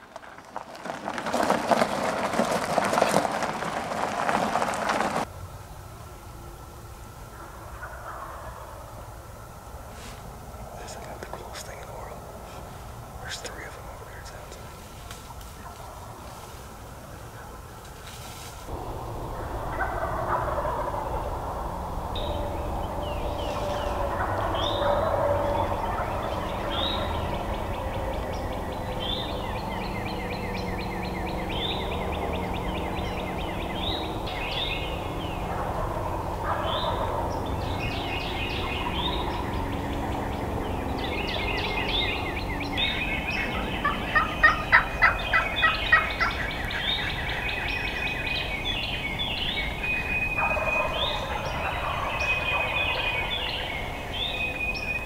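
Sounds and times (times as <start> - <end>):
songbirds singing: 4.3 - 55.0
distant turkey gobbling: 7.3 - 9.6, 10.7 - 54.9.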